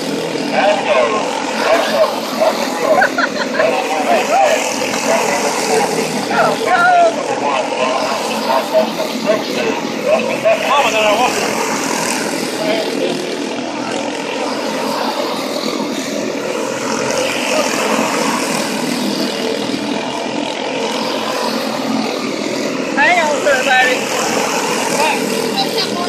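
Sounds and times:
small race car engines droning: 0:00.0 - 0:26.0
person shouting: 0:05.6 - 0:07.2.

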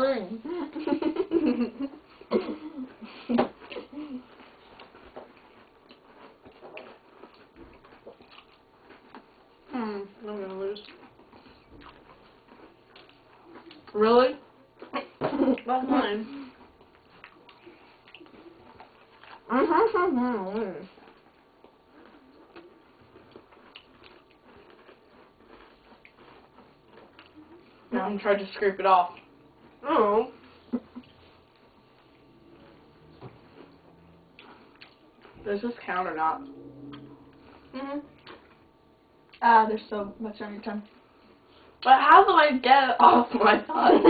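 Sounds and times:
faint chewing: 0:00.7 - 0:41.9.

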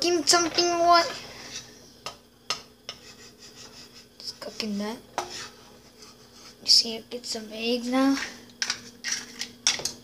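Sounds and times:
wooden spoon scraping frying pan: 0:00.3 - 0:01.8, 0:02.9 - 0:06.8, 0:08.2 - 0:09.5.

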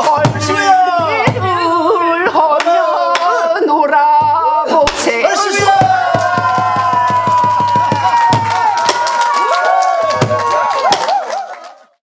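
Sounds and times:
audience shouting and cheering: 0:05.1 - 0:12.0.

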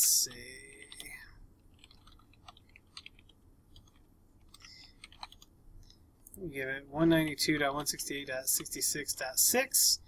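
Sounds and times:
computer keyboard keystrokes: 0:01.7 - 0:05.5.

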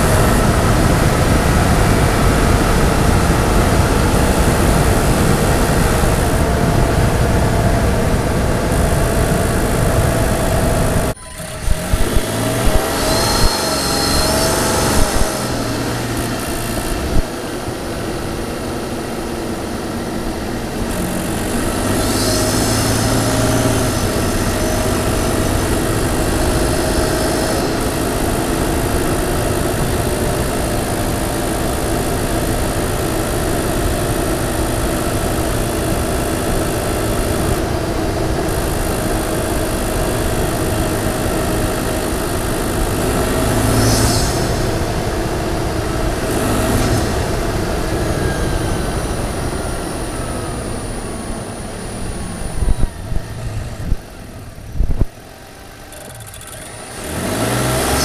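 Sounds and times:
truck engine revving: 0:00.0 - 0:58.0.

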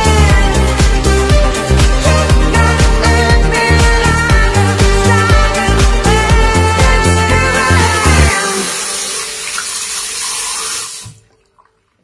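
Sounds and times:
hands rinsing under water: 0:07.8 - 0:12.0
tap water running into sink: 0:08.0 - 0:12.0.

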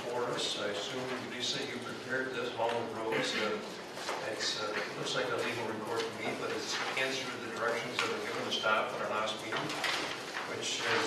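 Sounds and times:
quiet talk: 0:00.0 - 0:11.0
paper pages rustling: 0:05.0 - 0:11.0.

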